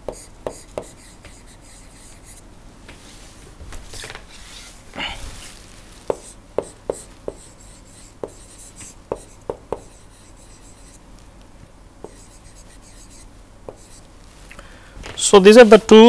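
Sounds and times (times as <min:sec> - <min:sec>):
stylus tapping on tablet: 0:00.0 - 0:01.4, 0:06.1 - 0:07.5, 0:08.2 - 0:10.0, 0:12.0 - 0:12.4, 0:13.7 - 0:14.0.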